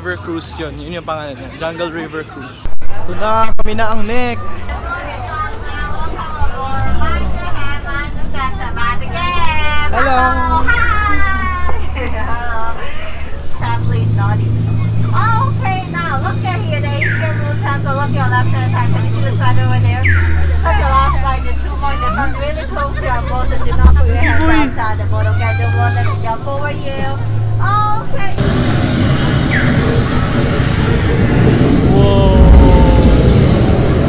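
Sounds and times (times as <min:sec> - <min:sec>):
boat motor humming: 0:04.7 - 0:34.0
loud low rumble with rushing: 0:04.7 - 0:34.0.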